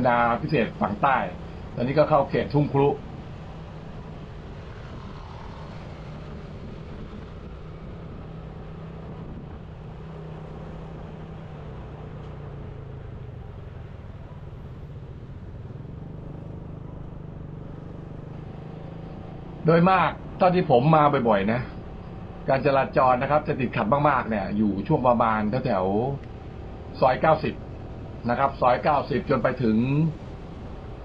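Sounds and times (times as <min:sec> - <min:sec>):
motorcycle engine cruising: 0:00.0 - 0:31.0
passing traffic: 0:00.0 - 0:31.0
road and wind noise: 0:00.0 - 0:31.0.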